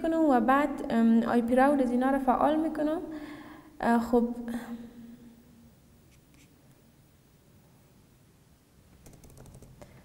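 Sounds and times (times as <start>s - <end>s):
typing on computer keyboard: 9.0s - 9.9s.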